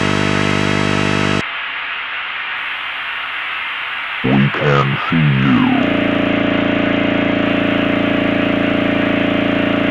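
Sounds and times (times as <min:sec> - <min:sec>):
distorted electronic drone: 0:04.2 - 0:09.9.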